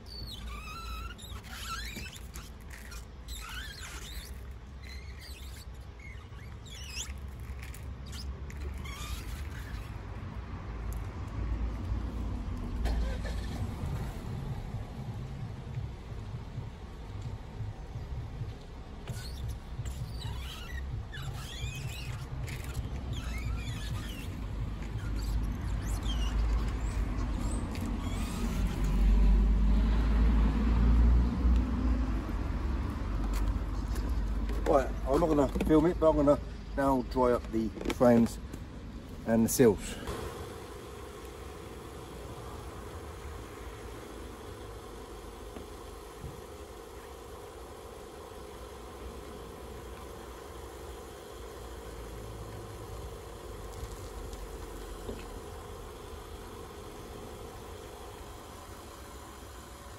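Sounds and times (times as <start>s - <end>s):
squeegee squeaking on wet glass: 0.0s - 10.1s, 19.0s - 29.1s
low steady rumble: 0.0s - 59.9s.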